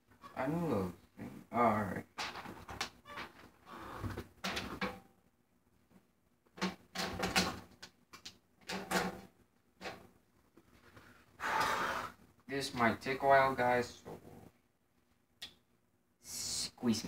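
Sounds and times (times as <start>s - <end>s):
knocks and plastic clatter: 2.1s - 5.0s, 6.5s - 10.1s.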